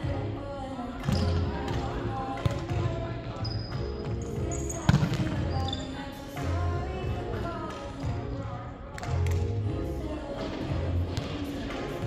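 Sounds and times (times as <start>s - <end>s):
sneakers squeaking on court: 1.0s - 6.0s.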